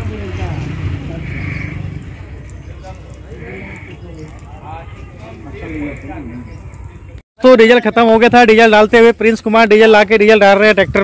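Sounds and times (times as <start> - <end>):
voices talking in background: 0.0 - 11.0.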